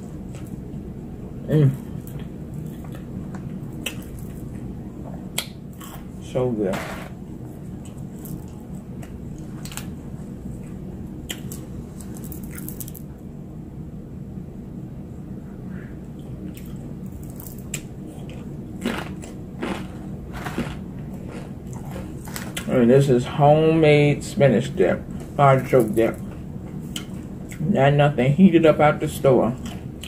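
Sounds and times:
steady low hum: 0.0 - 30.0
crunching tortilla chip: 11.3 - 13.1, 16.6 - 22.7.

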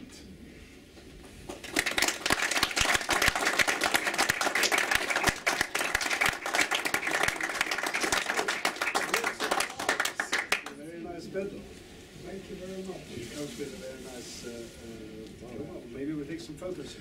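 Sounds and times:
audience applauding: 1.5 - 10.8.

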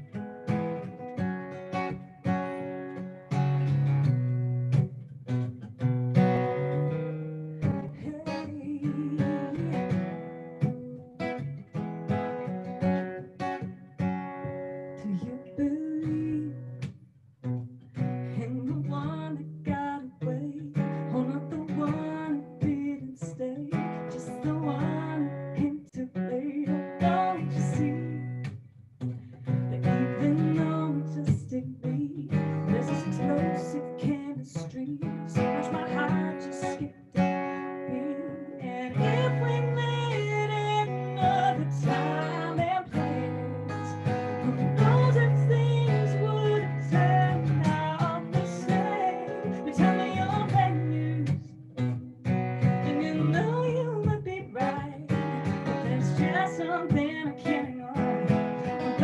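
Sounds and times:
acoustic guitar strumming: 0.0 - 59.0
woman singing: 7.6 - 11.6, 14.4 - 16.9, 18.2 - 28.6, 29.5 - 59.0.

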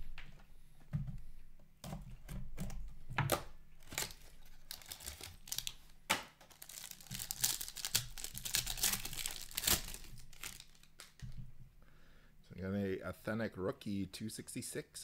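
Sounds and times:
plastic wrapper tearing and crinkling: 3.8 - 11.3.

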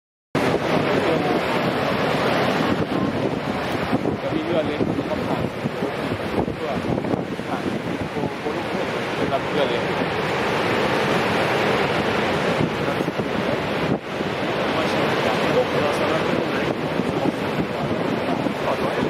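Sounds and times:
waterfall rushing: 0.4 - 19.0
wind buffeting microphone: 0.4 - 19.0.

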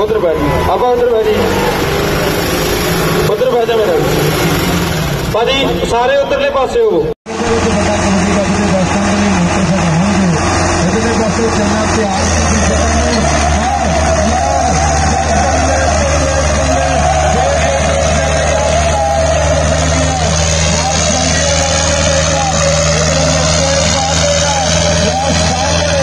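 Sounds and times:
tractor engines droning under load: 0.0 - 26.0.

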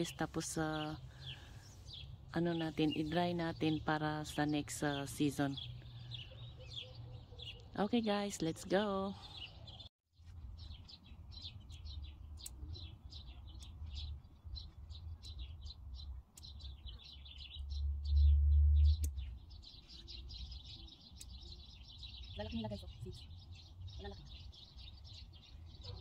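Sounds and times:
small birds chirping: 0.0 - 26.0
low rumble: 17.6 - 19.4
sharp clicks: 18.9 - 19.3.

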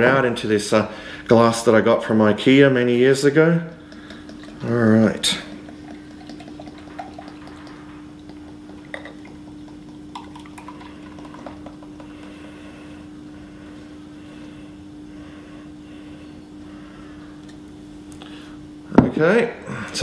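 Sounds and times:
beer fizzing: 3.6 - 12.4
beer pouring into a glass: 3.8 - 12.3.

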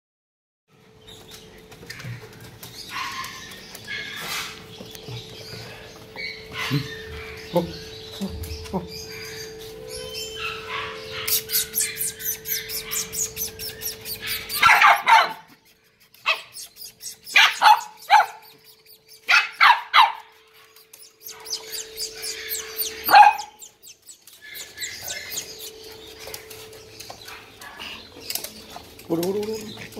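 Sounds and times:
puppies whimpering: 5.8 - 29.9.

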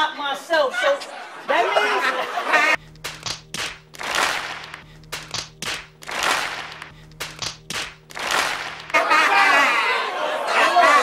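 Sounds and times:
crowd clapping and laughing: 1.1 - 9.7
background music with low note: 2.8 - 9.0.

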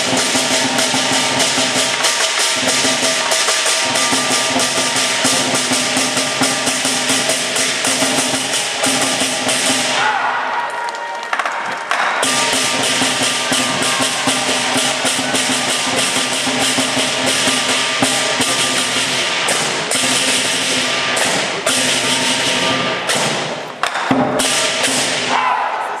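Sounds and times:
drum cymbals and gong percussion: 0.0 - 10.1, 12.1 - 25.5.

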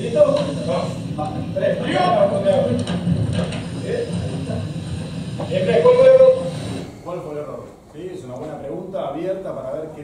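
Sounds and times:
muffled indistinct speech: 0.0 - 10.0.

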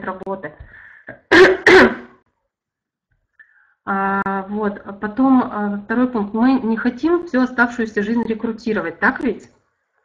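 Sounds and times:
woman clearing her throat: 1.1 - 2.2.

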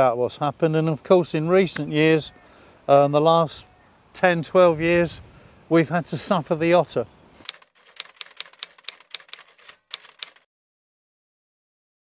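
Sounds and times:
typewriter keys clicking: 7.4 - 10.5.

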